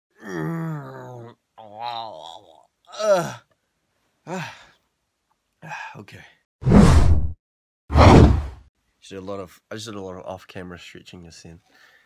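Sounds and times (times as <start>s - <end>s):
man groaning: 0.2s - 3.5s.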